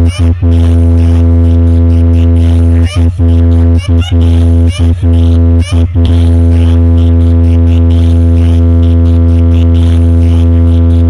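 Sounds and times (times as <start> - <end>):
loud low bass drone: 0.0 - 11.0.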